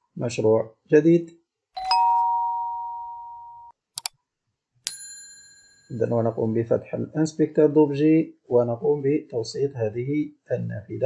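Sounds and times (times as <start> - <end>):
bright bell ding: 1.8 - 3.7, 4.9 - 6.2.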